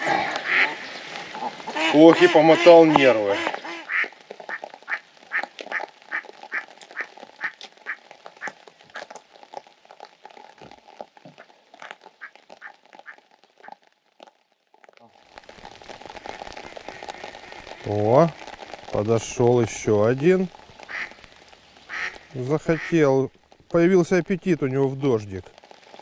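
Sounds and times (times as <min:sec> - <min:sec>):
rain pattering on water: 0:00.0 - 0:26.0
duck quacking: 0:00.4 - 0:00.8, 0:01.4 - 0:04.1, 0:20.9 - 0:21.2, 0:21.9 - 0:22.9.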